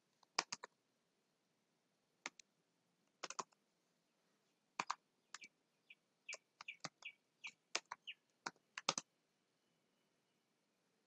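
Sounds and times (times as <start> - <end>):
keyboard keystroke clicks: 0.2 - 0.7, 3.2 - 3.6, 4.8 - 5.5, 7.7 - 9.1.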